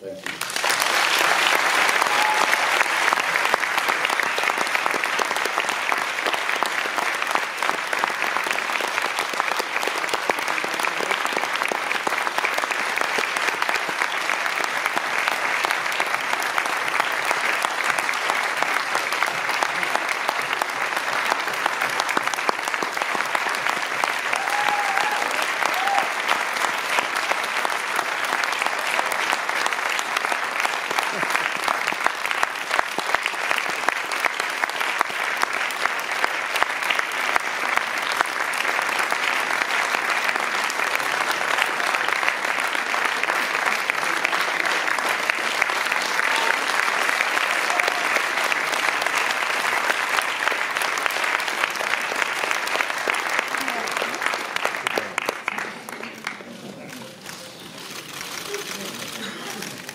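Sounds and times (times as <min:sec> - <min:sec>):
audience applauding: 0:00.0 - 0:59.9.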